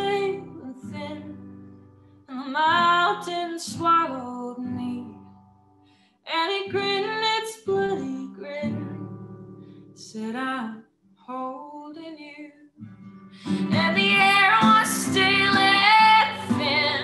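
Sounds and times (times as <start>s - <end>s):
woman singing: 0.0s - 1.6s, 2.3s - 5.3s, 6.3s - 9.2s, 10.0s - 12.8s, 13.4s - 17.0s
acoustic guitar: 0.0s - 11.3s, 12.8s - 17.0s.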